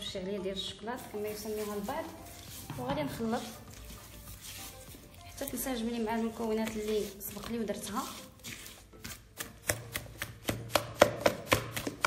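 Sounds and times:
hand slapping wet dough: 0:06.2 - 0:12.0.

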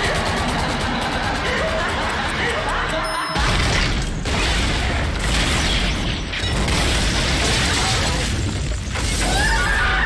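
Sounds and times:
rapid automatic gunfire: 0:00.0 - 0:08.7.

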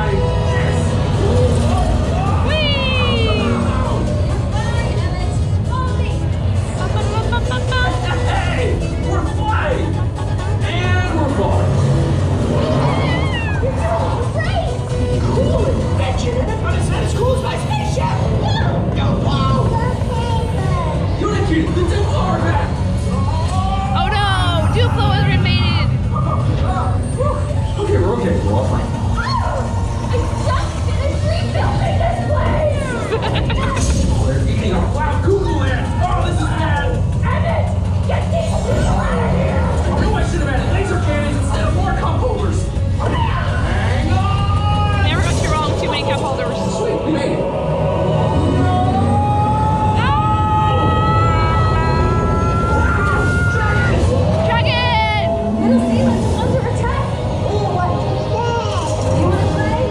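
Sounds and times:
heavy low rumble: 0:00.0 - 0:59.9
loud ride soundtrack music: 0:00.0 - 0:59.9.

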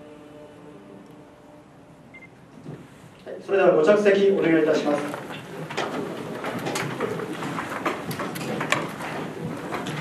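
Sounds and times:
chairs scraping and knocking: 0:04.4 - 0:10.0.

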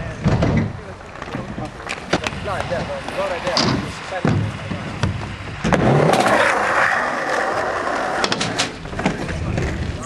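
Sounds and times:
small wheels rolling on concrete: 0:00.0 - 0:10.0.

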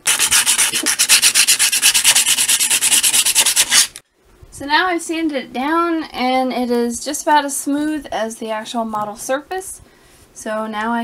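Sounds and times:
sandpaper rubbing on hard plastic: 0:00.0 - 0:04.0.

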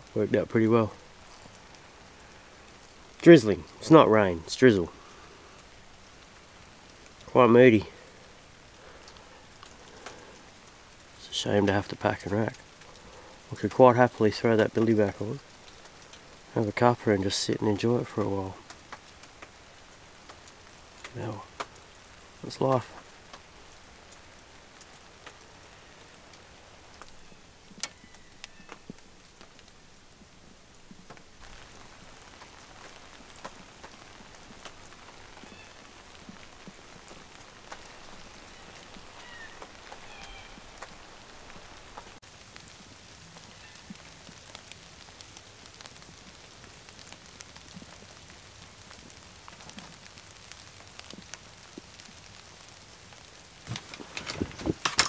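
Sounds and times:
light drizzle hiss: 0:00.0 - 0:55.0
single raindrops ticking: 0:01.0 - 0:55.0.

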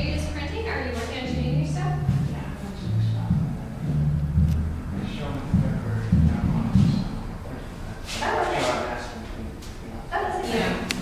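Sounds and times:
muffled murmur of voices: 0:04.8 - 0:11.0.

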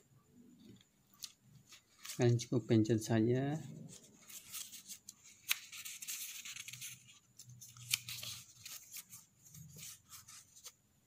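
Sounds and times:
paper pages rustling: 0:00.7 - 0:02.5, 0:03.7 - 0:10.8.

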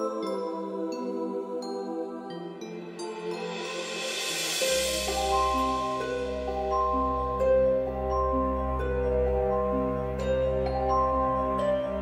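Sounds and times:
music score of held notes: 0:00.0 - 0:12.0
hissing swell: 0:03.0 - 0:08.6.

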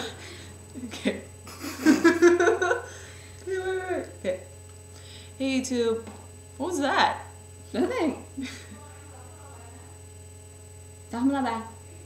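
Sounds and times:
faint high whine: 0:00.0 - 0:12.0
low electrical hum: 0:00.0 - 0:12.0
woman's voice: 0:03.4 - 0:04.5, 0:05.4 - 0:10.0, 0:11.1 - 0:12.0.

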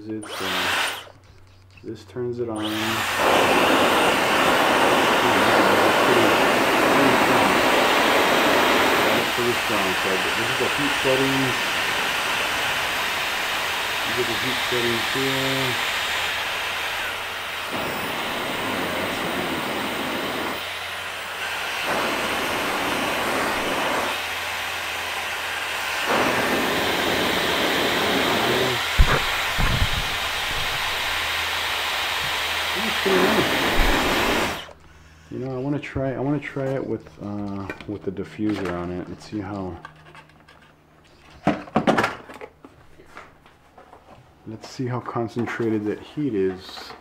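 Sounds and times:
hair dryer rushing air: 0:00.2 - 0:01.1, 0:02.6 - 0:34.8
sharp thump: 0:29.0 - 0:30.8.

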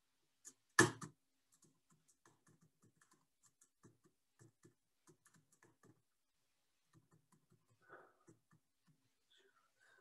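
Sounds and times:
faint keyboard typing: 0:00.4 - 0:06.2, 0:06.8 - 0:09.2.

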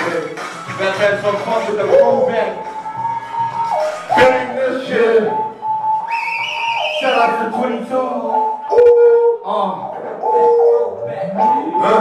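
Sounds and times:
hip-hop synth chords over pa: 0:00.0 - 0:06.1, 0:07.0 - 0:12.0.

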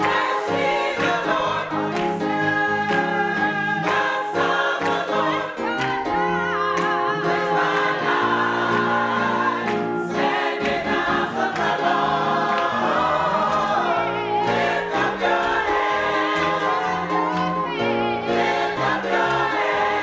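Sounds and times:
choir singing gospel song: 0:00.0 - 0:20.0
instrumental accompaniment: 0:00.0 - 0:20.0.

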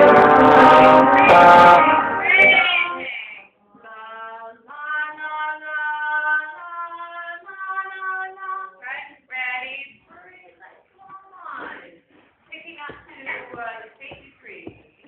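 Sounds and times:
trombone playing: 0:00.0 - 0:03.1.

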